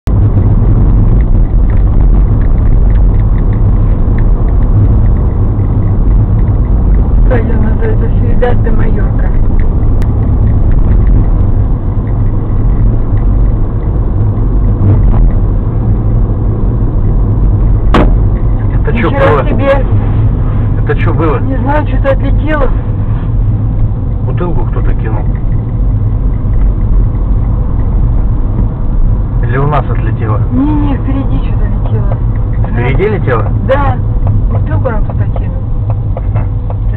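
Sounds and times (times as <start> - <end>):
car driving rumble: 0.0 - 36.9
person talking: 18.7 - 19.9.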